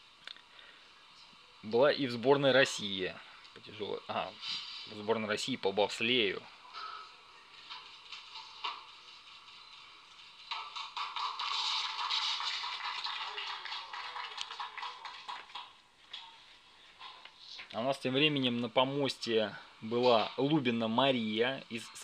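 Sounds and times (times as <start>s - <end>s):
audience applause: 10.5s - 15.8s.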